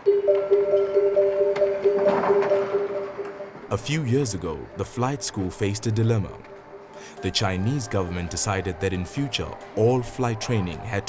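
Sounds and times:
sustained background music chord: 0.0 - 11.0.

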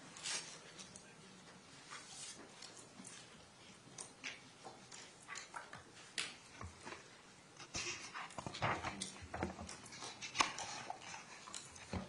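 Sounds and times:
rustling of people moving: 0.0 - 12.0.

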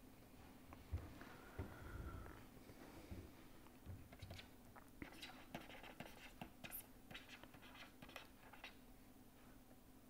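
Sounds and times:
faint low hum: 0.0 - 10.0
stylus scratching on tablet: 4.1 - 8.8.

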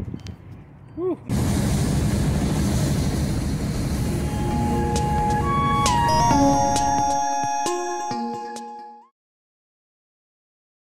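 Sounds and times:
truck road and engine noise: 0.0 - 8.1
synthesizer music tones: 4.2 - 9.1.

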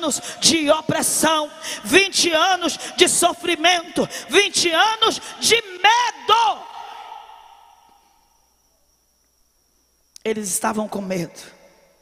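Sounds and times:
amplified speech echoing in hall: 0.0 - 7.6.

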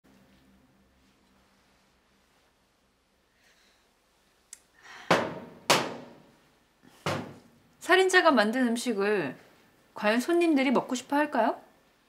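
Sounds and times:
loud sharp knocks: 5.1 - 6.2, 7.0 - 7.4.

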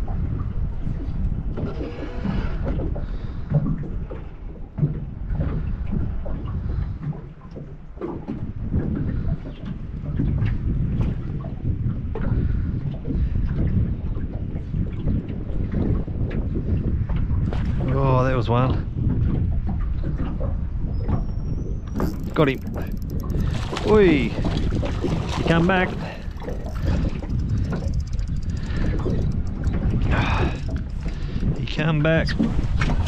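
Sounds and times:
water lapping at boat hull: 0.0 - 33.0
wind buffeting microphone: 0.0 - 33.0.

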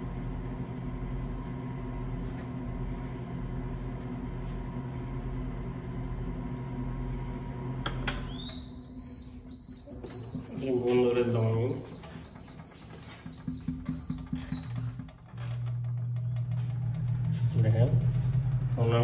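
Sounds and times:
oven electric hum: 0.0 - 19.0
oven switch click: 7.8 - 8.6
high-pitched electronic beep: 8.3 - 15.0.

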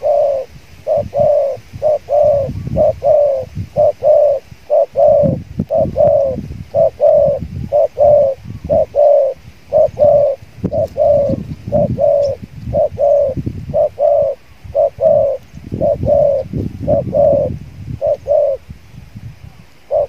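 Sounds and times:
doves cooing: 0.0 - 18.8, 19.5 - 20.0.

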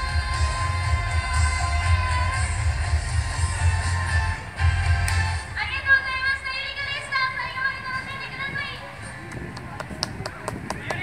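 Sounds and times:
wind rumbling on microphone: 5.6 - 11.0
audience clapping: 9.3 - 11.0.

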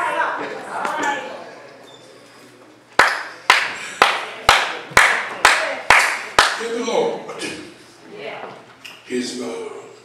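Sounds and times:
hand claps in a hall: 2.9 - 6.7.

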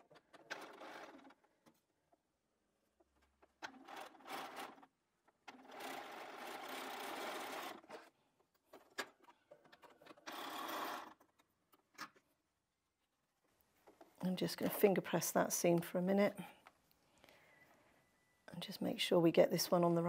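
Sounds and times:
sewing machine stitching: 0.0 - 1.5, 3.5 - 8.1, 9.7 - 11.4.

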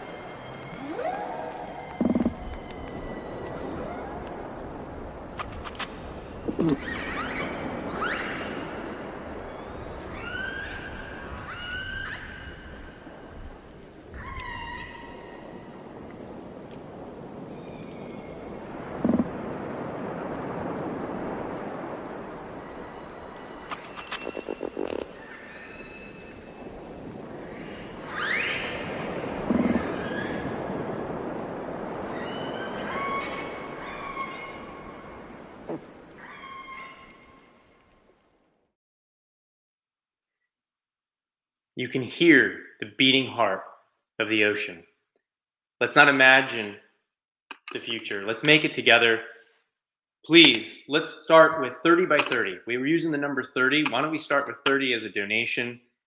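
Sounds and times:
whale calls: 0.0 - 5.2, 6.2 - 16.6, 17.2 - 20.2, 20.9 - 37.9
sea noise: 0.0 - 38.7, 50.3 - 55.7.

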